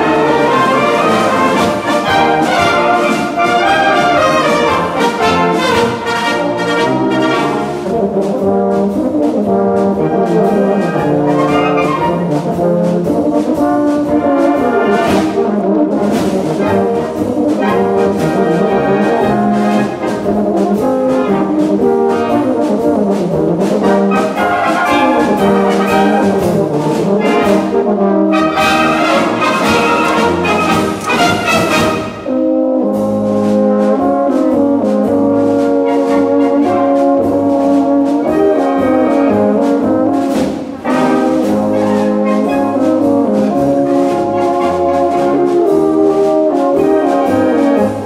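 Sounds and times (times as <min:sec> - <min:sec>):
brass band accompaniment: 0:00.0 - 0:48.0
tenor horns playing polka duet: 0:00.0 - 0:48.0.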